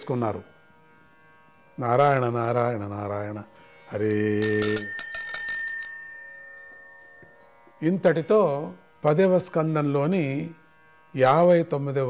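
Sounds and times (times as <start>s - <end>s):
small high-pitched bell ringing: 4.1s - 7.5s.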